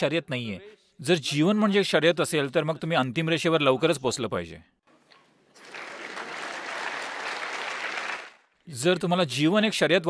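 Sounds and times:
audience applauding: 0:05.5 - 0:08.6.

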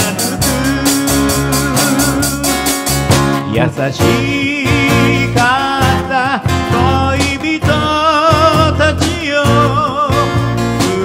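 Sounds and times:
acoustic guitars: 0:00.0 - 0:11.0
drums: 0:00.0 - 0:11.0
electric bass: 0:00.0 - 0:11.0
person singing: 0:00.0 - 0:11.0.

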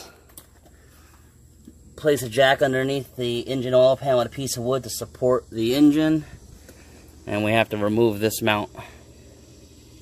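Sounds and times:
faint low hum and hiss: 0:00.0 - 0:10.0.

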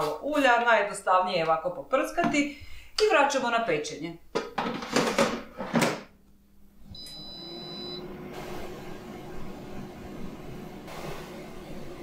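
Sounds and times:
high beep: 0:07.0 - 0:08.0
fan whirring: 0:07.0 - 0:12.0.

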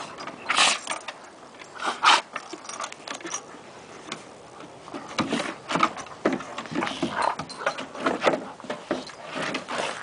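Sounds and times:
dogs growling and snarling: 0:00.0 - 0:03.7, 0:04.4 - 0:10.0
paws scuffling on wooden boards: 0:02.0 - 0:10.0.

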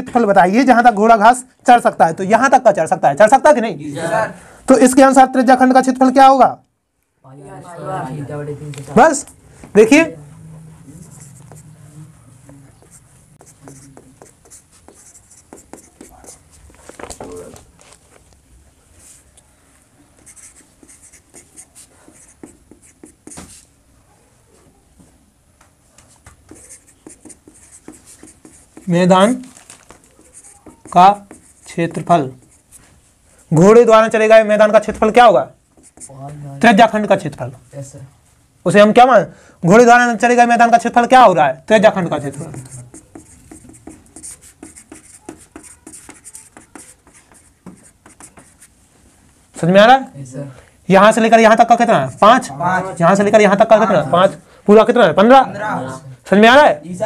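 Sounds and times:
marker writing on whiteboard: 0:10.8 - 0:17.7, 0:20.1 - 0:23.7, 0:26.0 - 0:36.8, 0:41.8 - 0:48.8.

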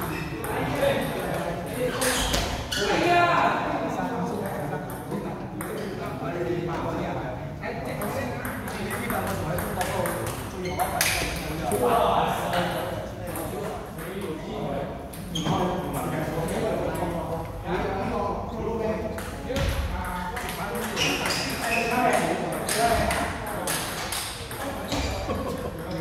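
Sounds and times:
people talking: 0:00.0 - 0:26.0.

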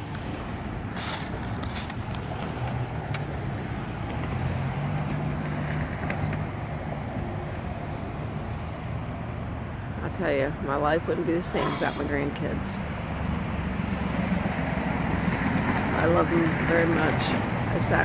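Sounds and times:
outdoor background noise: 0:00.0 - 0:18.0
vehicle driving past: 0:02.4 - 0:07.1.

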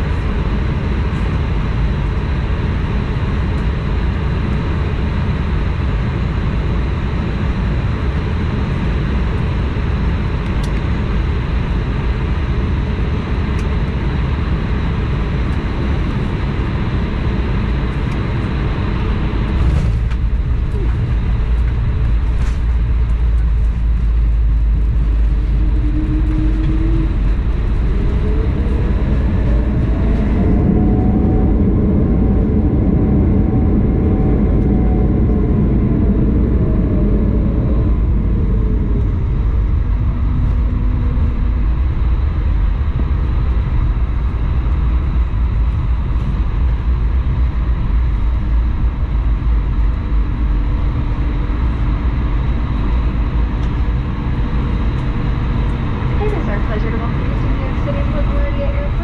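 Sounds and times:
jet engine reverse thrust whine: 0:00.0 - 0:59.0
loud rumble of rollout: 0:00.0 - 0:59.0.

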